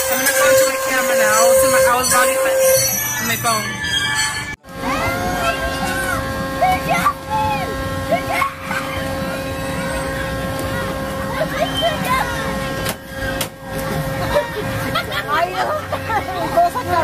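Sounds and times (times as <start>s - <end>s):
steady machine hum: 0.0s - 17.0s
voices calling and chattering: 0.0s - 17.0s.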